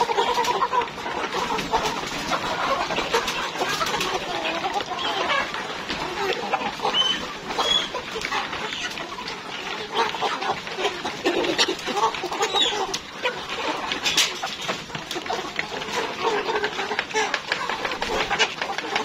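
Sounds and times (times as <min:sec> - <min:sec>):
chickens clucking and chirping: 0:00.0 - 0:19.0.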